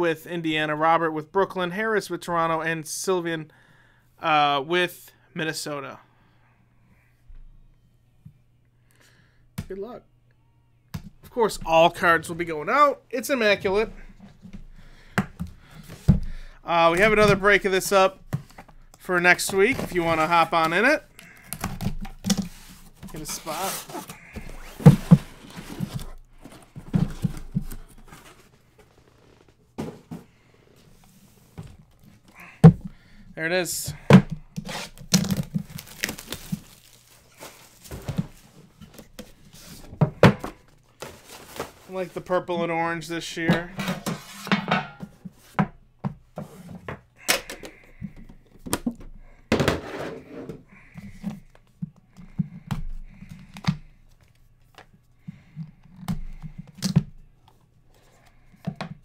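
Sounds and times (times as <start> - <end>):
cardboard scraping and rustling: 19.3 - 32.3, 34.6 - 42.2
cardboard sliding scrapes: 22.4 - 26.8.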